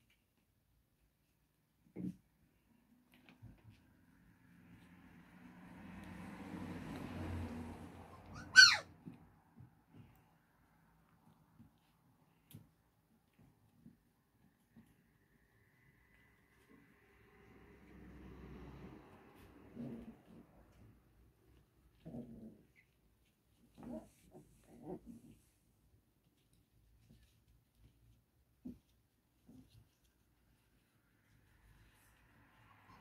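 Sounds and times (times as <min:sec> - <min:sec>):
puppy yelp: 0:08.0 - 0:09.2.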